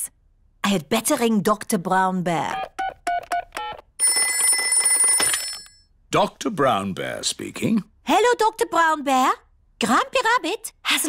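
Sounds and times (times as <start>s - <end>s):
telephone bell ringing: 4.0s - 5.9s.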